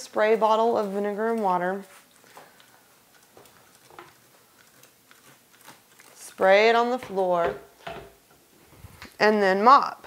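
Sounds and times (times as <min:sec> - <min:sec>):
faint clicks and taps: 0:02.2 - 0:06.1.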